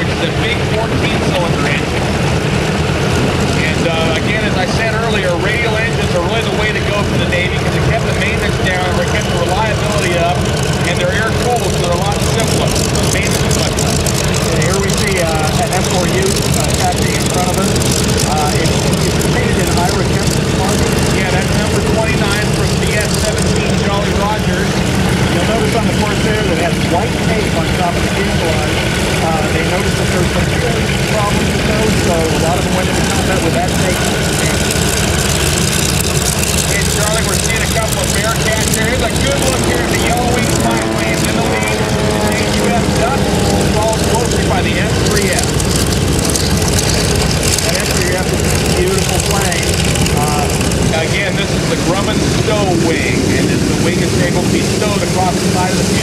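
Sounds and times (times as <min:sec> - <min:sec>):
radial aircraft engine rumbling: 0:00.0 - 0:56.0.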